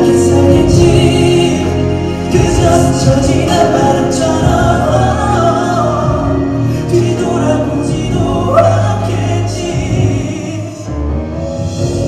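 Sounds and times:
cello: 0:00.0 - 0:12.0
male vocal group singing: 0:00.0 - 0:12.0
piano: 0:00.0 - 0:12.0.

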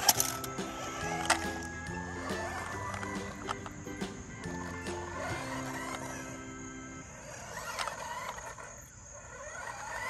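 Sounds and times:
toy car electric motor whining: 0:00.0 - 0:10.0.

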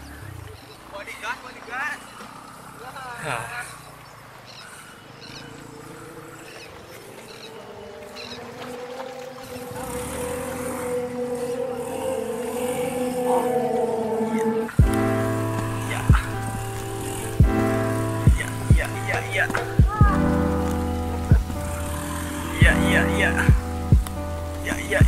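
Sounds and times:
beat with heavy kick drum: 0:14.8 - 0:15.1, 0:17.4 - 0:17.7, 0:18.3 - 0:20.3, 0:21.3 - 0:21.6, 0:23.5 - 0:24.2.

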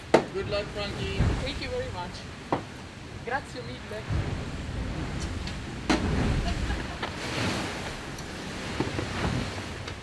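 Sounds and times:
rushing sea water: 0:00.0 - 0:10.0
wind: 0:00.0 - 0:10.0
wind buffeting microphone: 0:00.0 - 0:10.0.

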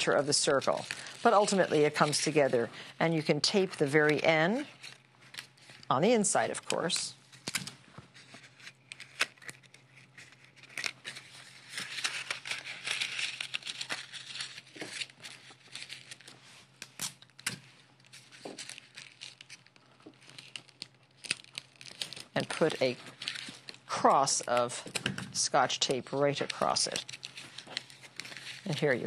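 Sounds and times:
paper crinkling and crackling: 0:00.0 - 0:29.0
sharp paper clicks: 0:08.8 - 0:25.2.

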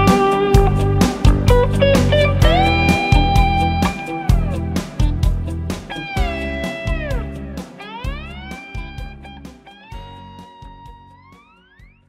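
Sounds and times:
drums and bass: 0:00.0 - 0:12.0
electric guitar lead sliding: 0:00.0 - 0:12.0.

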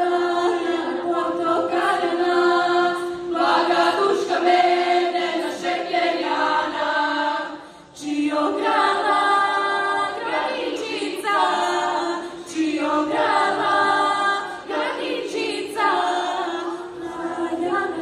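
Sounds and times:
girls choir singing a cappella: 0:00.0 - 0:18.0.

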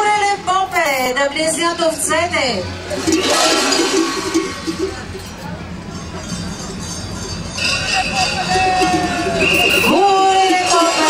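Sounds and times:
metal bells clanking and jangling: 0:03.1 - 0:10.0.

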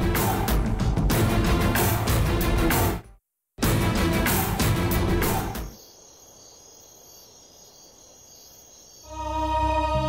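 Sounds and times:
crickets chirping: 0:05.3 - 0:10.0.

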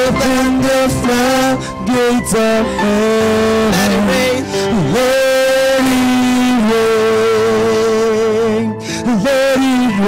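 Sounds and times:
person singing with vibrato: 0:00.0 - 0:10.0.

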